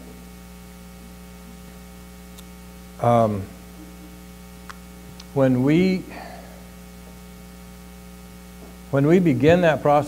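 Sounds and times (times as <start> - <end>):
low electrical hum: 0.0 - 10.0
man speaking: 3.0 - 3.6, 5.2 - 6.5, 8.9 - 10.0.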